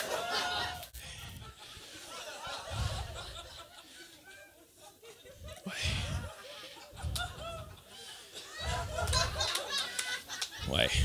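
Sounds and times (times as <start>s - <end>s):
audience laughing: 0.0s - 11.0s.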